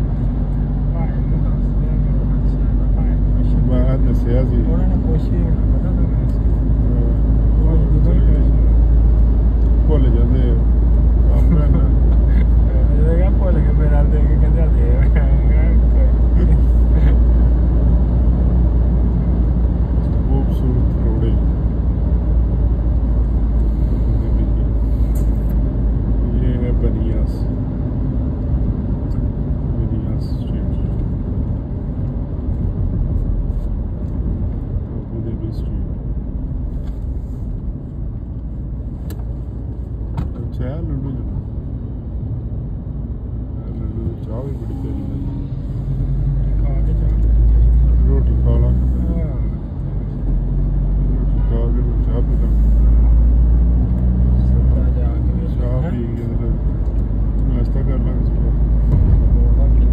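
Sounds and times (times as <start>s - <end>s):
road and wind noise inside car: 0.0s - 59.9s.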